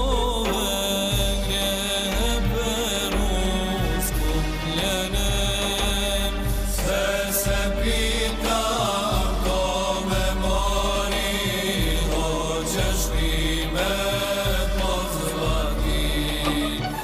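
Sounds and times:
choir singing a hymn: 0.0s - 17.0s.

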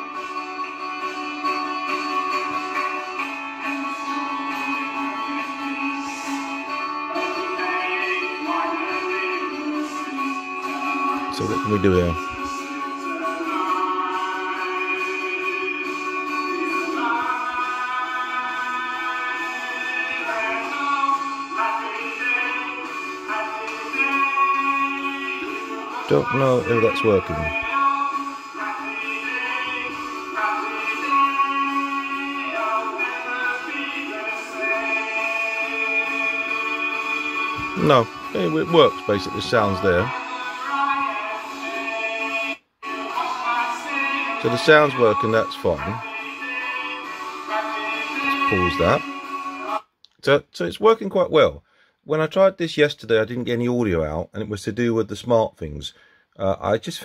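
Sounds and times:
thin song through monitor speakers: 0.0s - 52.5s.

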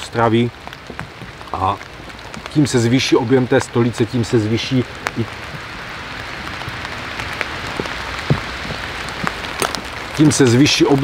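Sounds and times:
steady rushing hiss: 0.0s - 11.0s.

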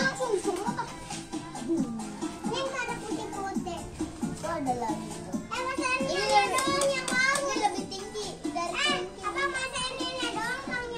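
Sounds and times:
background music: 0.0s - 10.9s
children chattering: 0.0s - 10.9s.

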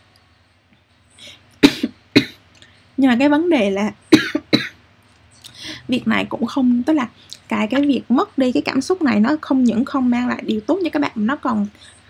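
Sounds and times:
woman coughing: 1.6s - 2.4s, 4.1s - 4.8s.

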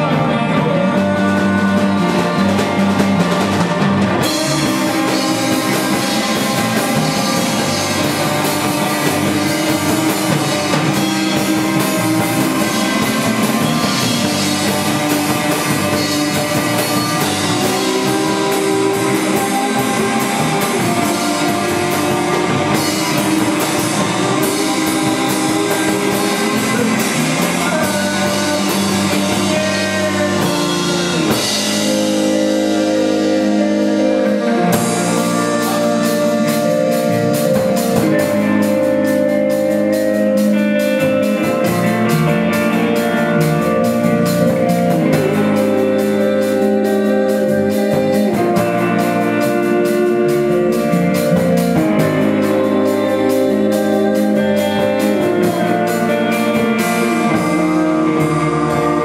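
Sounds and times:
electric guitars ringing chords: 0.0s - 59.0s
rock drums: 0.0s - 59.0s.

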